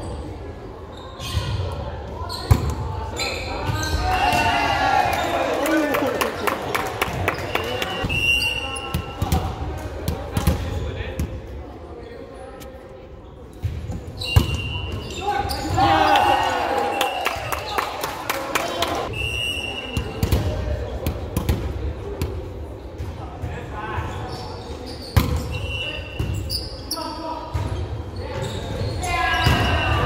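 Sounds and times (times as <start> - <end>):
players shouting: 3.6 - 8.0, 15.1 - 17.9.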